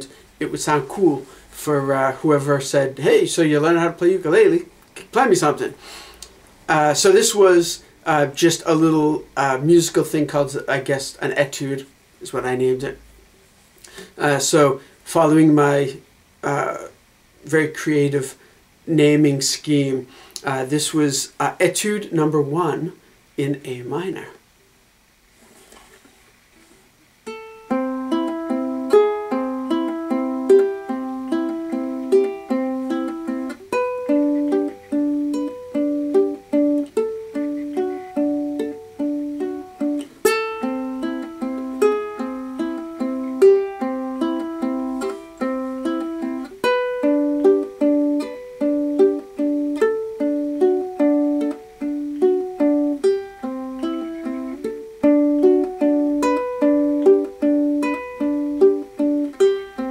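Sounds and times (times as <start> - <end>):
fingerpicked ukulele: 27.2 - 59.9.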